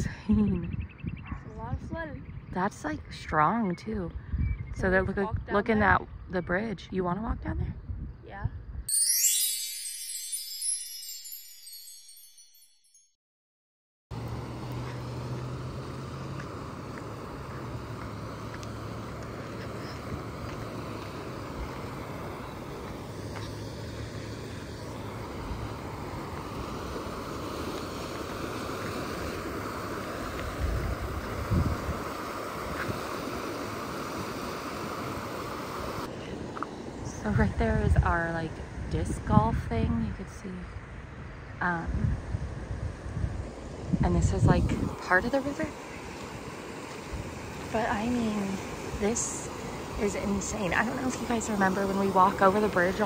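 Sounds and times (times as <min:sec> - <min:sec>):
chiming jingle: 0:08.9 - 0:13.2.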